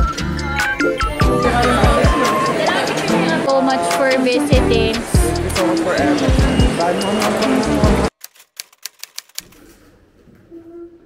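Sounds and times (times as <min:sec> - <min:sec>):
typewriter keys clacking: 0:07.3 - 0:09.6.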